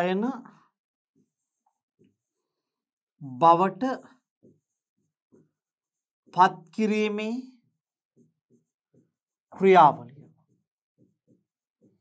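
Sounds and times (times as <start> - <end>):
man speaking: 9.6 - 10.2.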